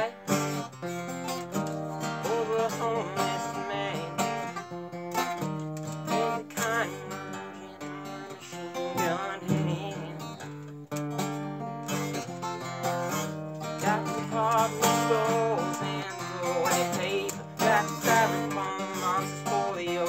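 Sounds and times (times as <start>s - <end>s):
wavering wordless vocals: 0.0s - 4.7s, 5.9s - 10.6s, 13.6s - 20.0s
acoustic guitar strumming: 0.0s - 20.0s.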